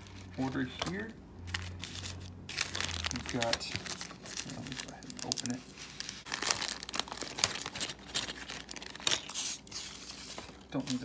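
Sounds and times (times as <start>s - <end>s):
plastic bag crinkling: 0.0s - 11.0s.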